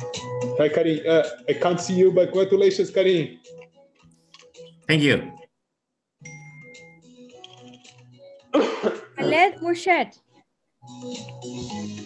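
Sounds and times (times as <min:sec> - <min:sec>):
soft background music: 0:00.0 - 0:05.5, 0:06.2 - 0:12.0
person coughing and clearing throat: 0:08.4 - 0:09.5.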